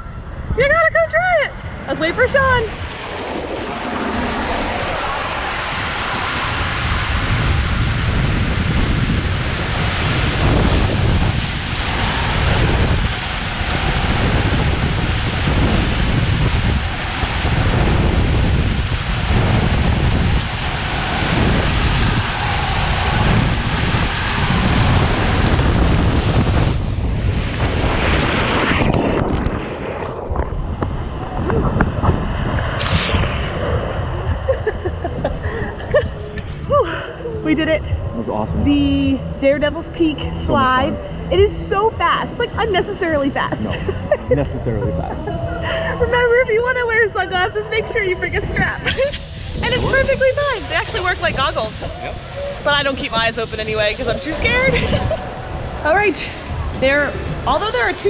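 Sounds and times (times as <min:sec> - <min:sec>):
low rumbles: 0:00.0 - 0:58.0
water and air rushing: 0:00.0 - 0:58.0.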